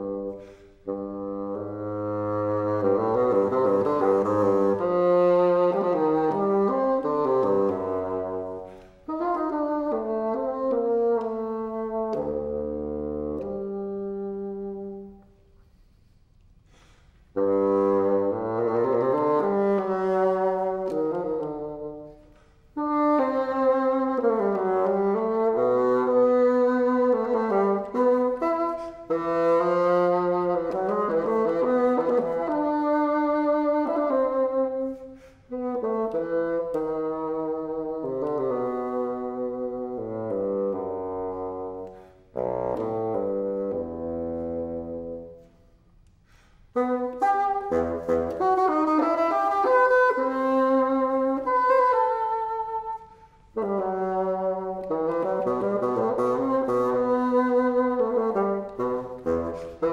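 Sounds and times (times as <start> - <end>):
solo bassoon playing: 0.0 - 16.1, 16.7 - 59.9
short breaths: 0.3 - 0.9, 8.6 - 9.1, 15.5 - 17.4, 35.0 - 35.5, 41.8 - 42.4, 46.0 - 46.8.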